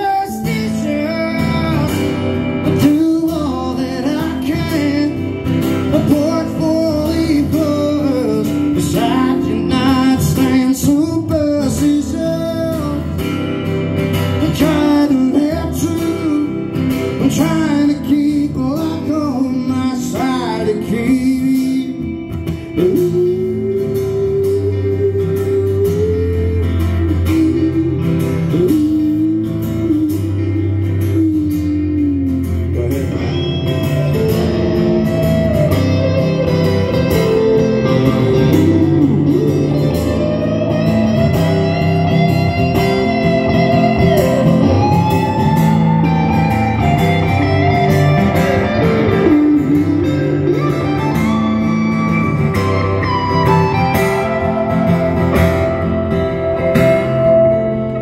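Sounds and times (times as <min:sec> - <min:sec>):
electric guitar lead: 0:00.0 - 0:58.0
live country band: 0:00.0 - 0:58.0.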